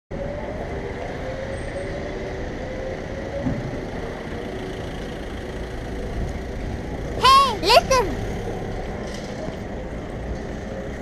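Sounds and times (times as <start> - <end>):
road traffic rumble: 0.1 - 11.0
faint engine hum: 0.2 - 11.0.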